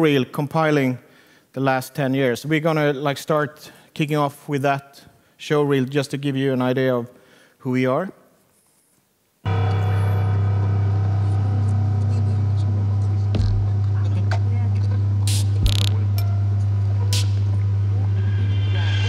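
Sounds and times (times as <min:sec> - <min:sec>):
high buzzing: 0:09.5 - 0:19.0
low electronic drone: 0:09.5 - 0:19.0.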